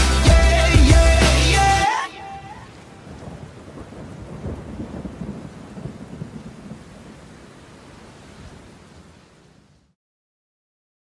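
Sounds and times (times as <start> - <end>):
rain-like hiss: 0.0 - 10.0.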